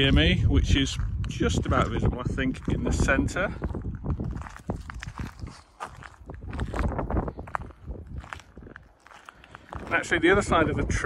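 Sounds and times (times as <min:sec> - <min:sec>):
footsteps on wet ground: 0:00.0 - 0:11.0.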